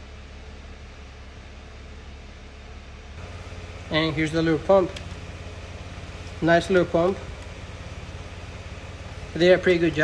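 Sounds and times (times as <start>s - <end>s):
low mechanical hum: 0.0s - 10.0s
person speaking: 3.5s - 10.0s.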